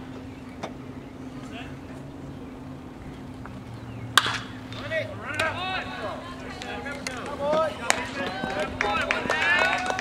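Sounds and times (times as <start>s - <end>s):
people shouting: 7.4s - 10.0s.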